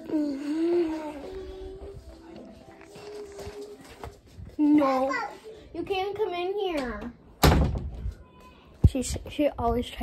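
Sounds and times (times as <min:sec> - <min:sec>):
door slamming shut: 0:07.4 - 0:08.0.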